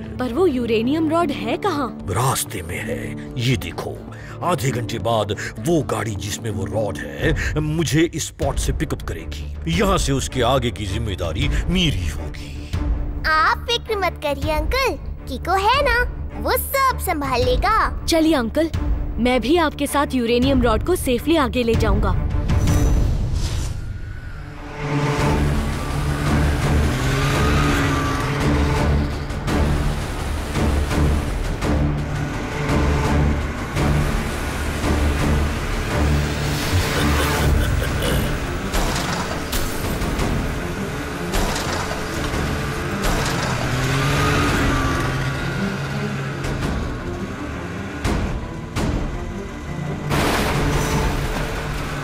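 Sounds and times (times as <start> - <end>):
background music: 0.0 - 52.0
cartoon vehicle engines running: 25.0 - 52.0.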